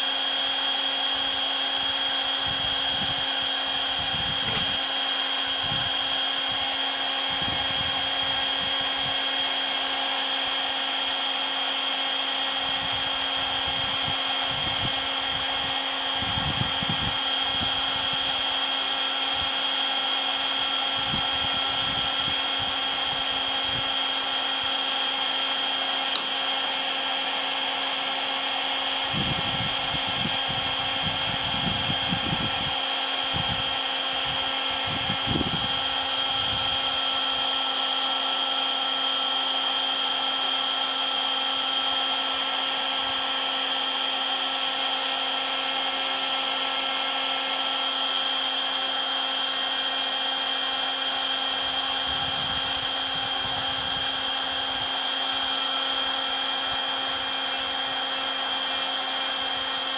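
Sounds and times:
heat gun fan whining: 0.0s - 59.9s.

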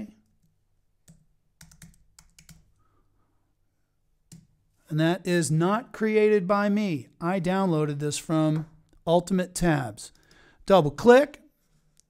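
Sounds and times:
faint keyboard typing: 0.2s - 2.8s, 4.3s - 4.6s.

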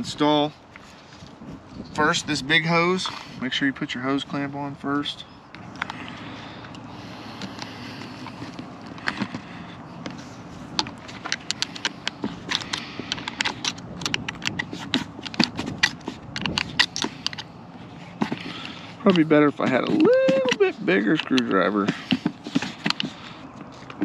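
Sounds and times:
hose and clamp clicks and scrapes: 3.0s - 3.4s, 5.5s - 24.0s.

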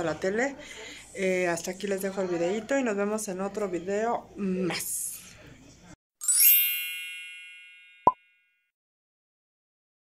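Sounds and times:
shimmering chime: 6.2s - 8.4s.

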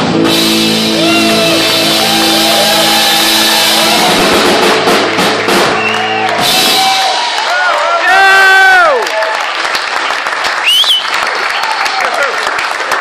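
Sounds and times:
bending lead guitar notes: 0.0s - 7.1s
live rock band playing: 0.0s - 7.6s.

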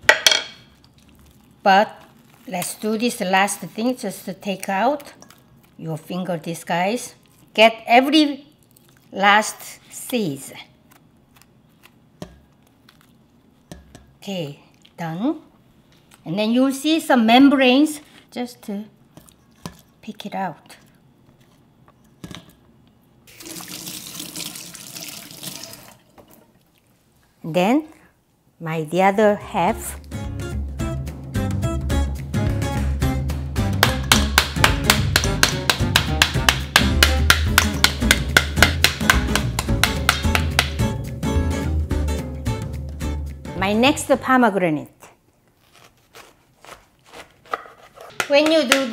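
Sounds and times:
wooden spoon knocking pomegranate: 33.8s - 40.9s, 47.5s - 48.9s
acoustic guitar music: 37.1s - 43.6s.

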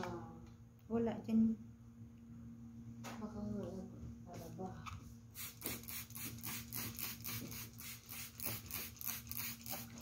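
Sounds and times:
spray bottle squirting mist: 5.4s - 10.0s.

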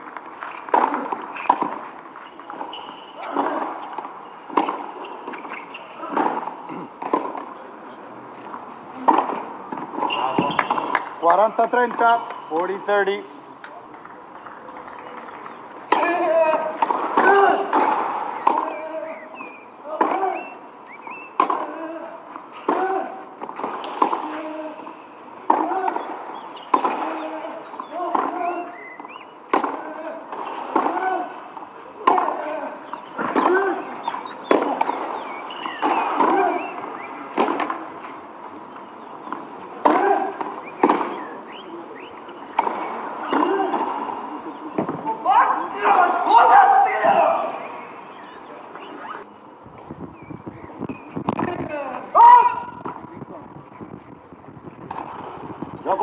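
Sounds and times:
racket striking tennis ball: 0.3s - 7.5s, 8.4s - 11.2s, 15.2s - 18.9s, 21.4s - 21.8s, 22.6s - 28.7s, 29.5s - 31.4s, 32.0s - 38.2s, 39.2s - 41.3s, 42.0s - 45.0s
shout of voices: 45.1s - 47.6s, 51.7s - 52.8s.

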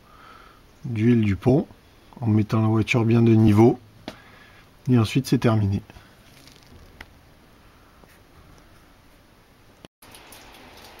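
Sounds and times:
handling noise: 6.2s - 7.2s.

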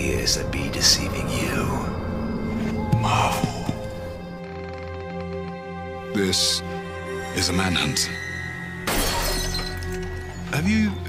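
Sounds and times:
trailer music: 0.0s - 11.0s.

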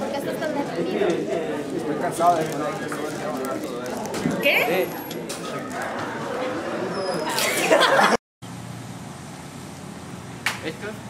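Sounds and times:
burst of laughter: 7.2s - 8.2s.

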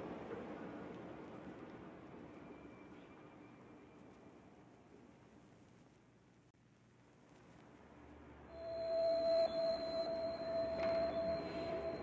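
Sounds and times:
soft hiss: 0.0s - 10.5s
ambient meditation music: 8.5s - 12.0s
steady pure tone: 8.5s - 12.0s.

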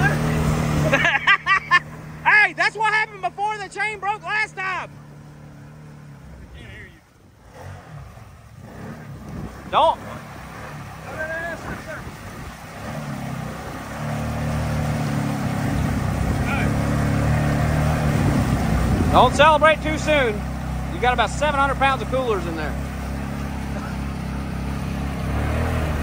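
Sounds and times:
engine pulling under load: 0.0s - 26.0s.

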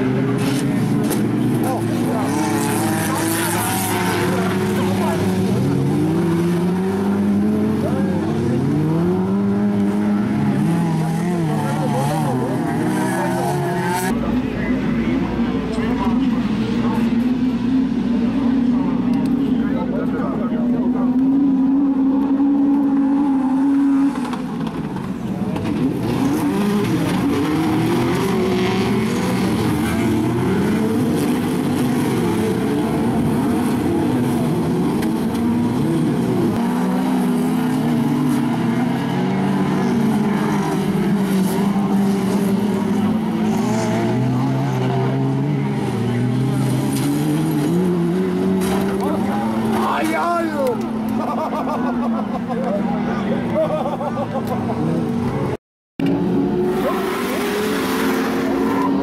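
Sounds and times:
racing car engines revving: 0.0s - 59.0s.

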